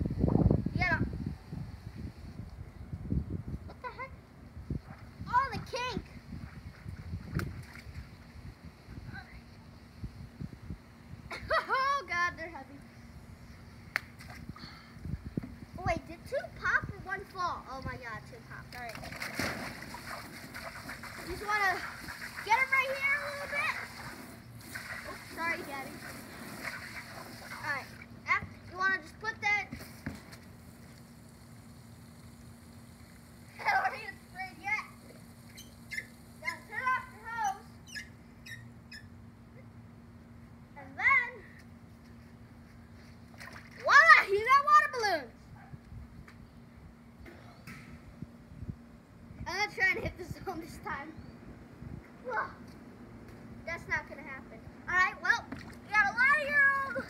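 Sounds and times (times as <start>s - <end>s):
child's voice: 0.7s - 1.2s, 3.7s - 4.2s, 5.2s - 6.1s, 11.3s - 12.8s, 15.8s - 19.0s, 21.2s - 24.0s, 25.1s - 26.1s, 27.6s - 29.7s, 33.6s - 35.1s, 36.4s - 37.7s, 40.8s - 41.6s, 43.8s - 45.4s, 49.4s - 51.3s, 52.2s - 52.6s, 53.6s - 57.0s
hose water splashing into tub: 18.8s - 28.1s.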